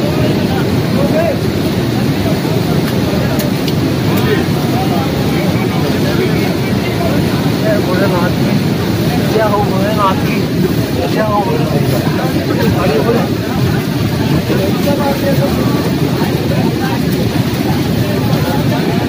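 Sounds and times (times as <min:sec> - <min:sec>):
faint voices: 0:00.0 - 0:19.0
fast-flowing river rushing: 0:00.0 - 0:19.0.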